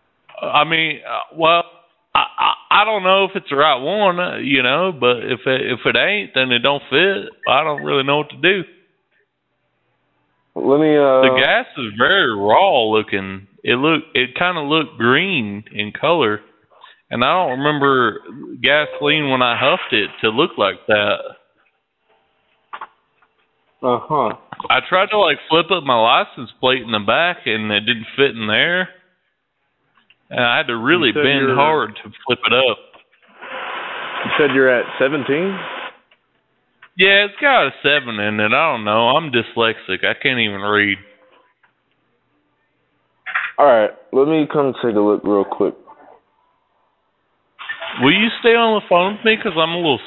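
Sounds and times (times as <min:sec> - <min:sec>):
voice on a phone line: 0:06.9 - 0:08.6, 0:17.0 - 0:21.3, 0:44.9 - 0:46.2, 0:47.8 - 0:50.0
man saying uh: 0:10.6 - 0:12.9, 0:17.0 - 0:21.3, 0:44.7 - 0:45.9.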